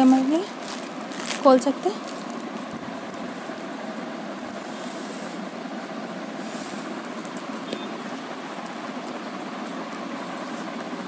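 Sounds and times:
fabric rustling: 0.0s - 3.8s.

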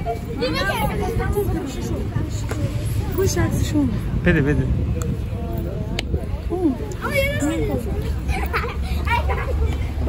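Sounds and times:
children chattering: 0.0s - 10.0s
street noise rumble: 0.0s - 10.0s.

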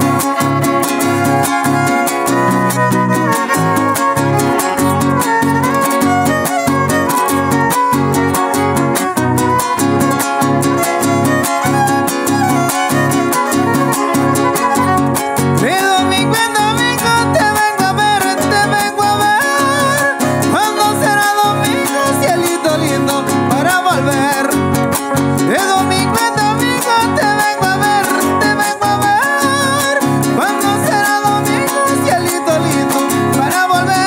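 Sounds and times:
violin melody with slides: 0.0s - 23.8s
strummed string rhythm: 0.0s - 34.0s.

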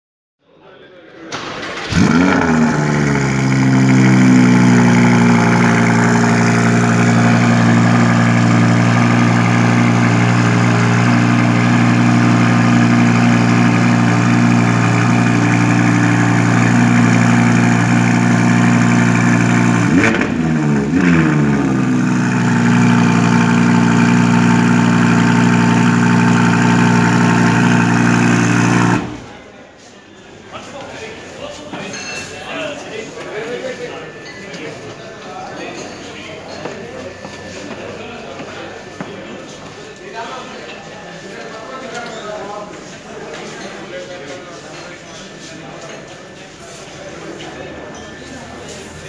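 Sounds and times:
car engine idling: 1.4s - 29.4s.

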